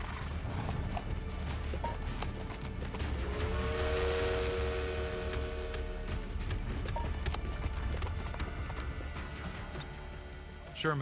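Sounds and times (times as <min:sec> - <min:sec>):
background music: 0:00.0 - 0:11.0
steam locomotive whistle: 0:03.2 - 0:06.2.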